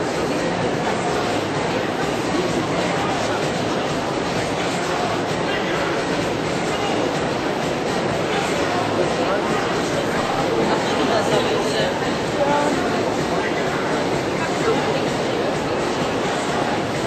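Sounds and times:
babble of many voices: 0.0s - 17.0s.

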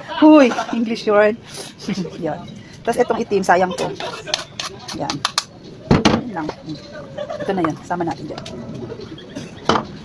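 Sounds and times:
woman speaking: 0.1s - 4.1s, 4.9s - 5.2s, 6.1s - 6.8s, 7.4s - 8.6s.

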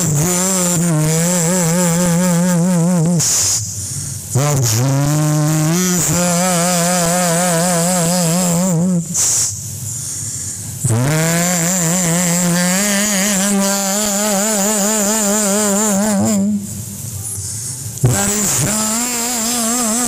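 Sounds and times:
man singing long notes: 0.0s - 3.7s, 4.3s - 9.6s, 10.8s - 17.0s, 18.0s - 20.0s.

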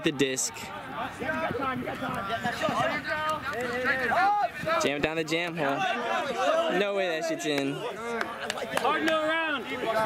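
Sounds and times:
people talking: 0.0s - 10.0s.

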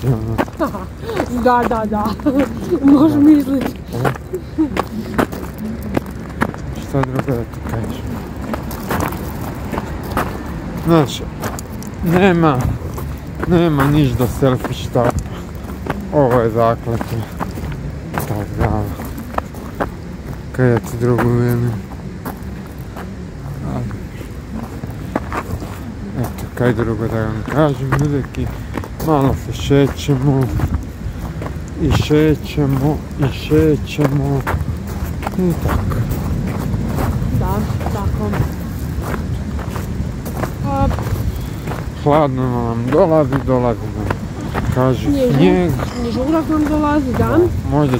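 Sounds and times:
person speaking: 0.0s - 22.1s, 23.1s - 47.9s
low background rumble: 0.0s - 47.9s.

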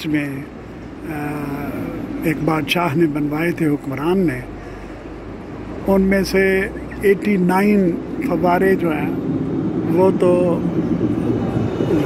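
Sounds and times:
street noise: 0.0s - 12.0s
tram humming on rails: 0.0s - 12.0s.

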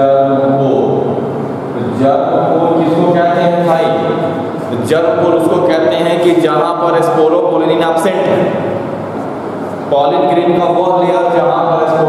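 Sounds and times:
man talking: 0.0s - 1.1s, 1.8s - 8.6s, 9.9s - 12.0s.

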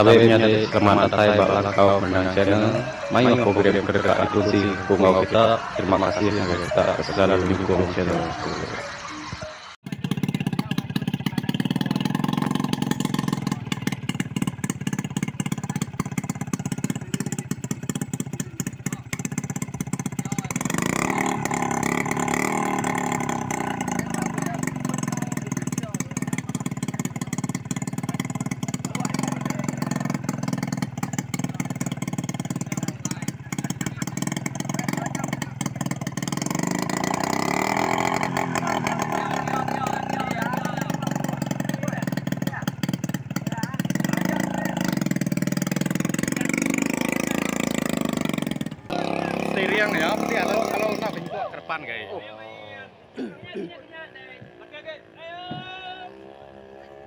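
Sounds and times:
small outboard engine running: 9.9s - 51.2s.

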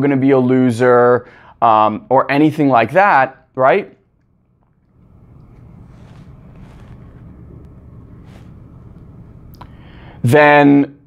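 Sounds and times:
steady low rumble: 3.4s - 10.2s.

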